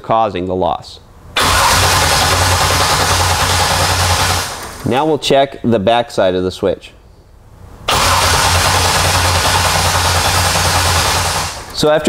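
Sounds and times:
starter motor cranking engine: 1.4s - 4.9s, 7.9s - 11.8s.

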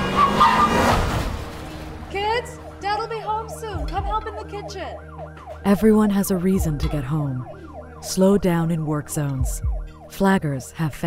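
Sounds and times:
car passing at speed: 0.0s - 2.8s.

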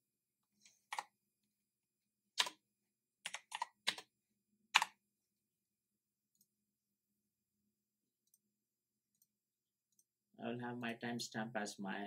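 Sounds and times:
computer keyboard keystrokes: 2.4s - 2.6s, 3.2s - 4.1s.

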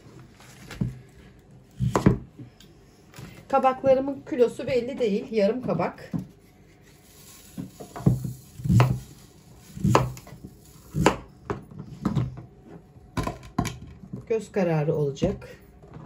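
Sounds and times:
knife chopping on plastic board: 1.8s - 2.3s, 8.0s - 9.0s, 9.8s - 12.2s.

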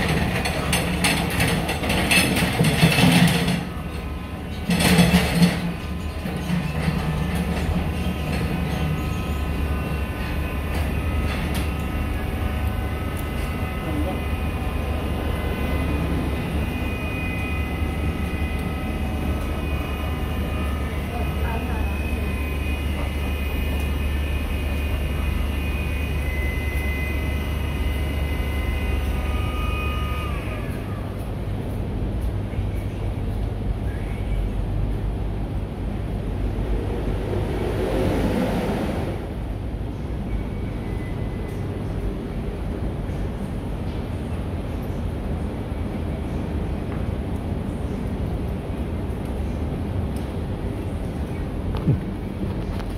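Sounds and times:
low hum: 0.0s - 52.9s.

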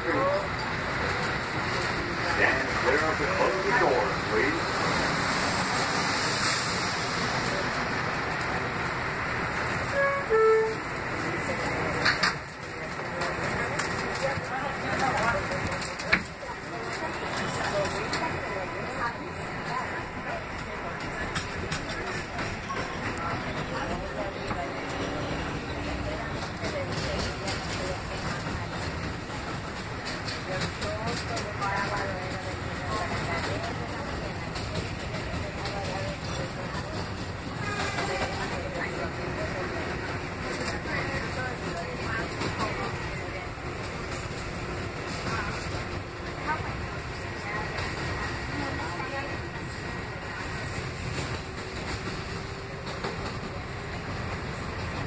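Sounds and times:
subway car wheels and motors: 0.0s - 55.0s.

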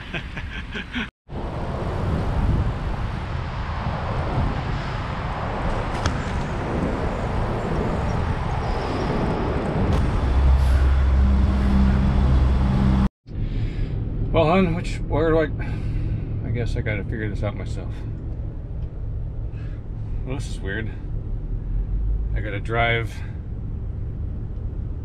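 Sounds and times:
tyre and street noise: 0.0s - 15.0s
wind buffeting microphone: 1.3s - 13.0s
steady low hum: 9.8s - 25.0s.

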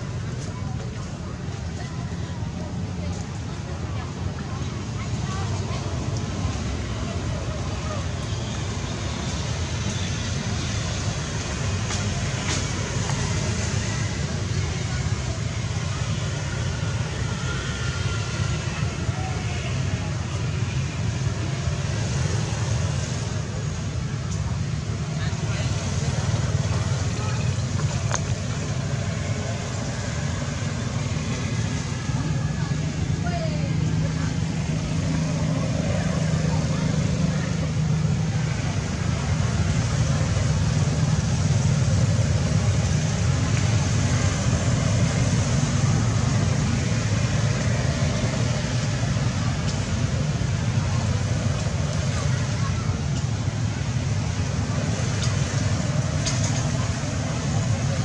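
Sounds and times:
low outdoor rumble: 0.0s - 58.0s.

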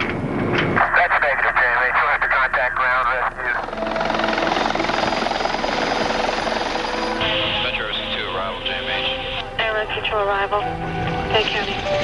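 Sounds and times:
helicopter rotor chop: 3.2s - 9.4s
helicopter engine hum: 3.2s - 12.0s.

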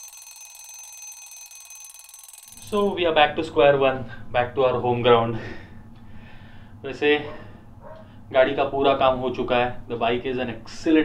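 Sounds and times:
alarm clock ringing: 0.0s - 3.0s.

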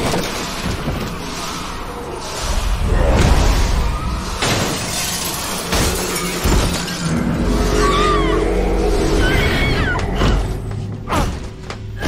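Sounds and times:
objects shattering and crashing: 0.0s - 8.1s
high wavering squeals: 1.2s - 10.5s.

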